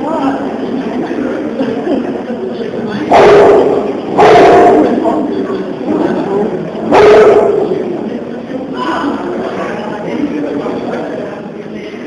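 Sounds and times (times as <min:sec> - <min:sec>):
jaguar harsh calls: 0:03.1 - 0:05.0.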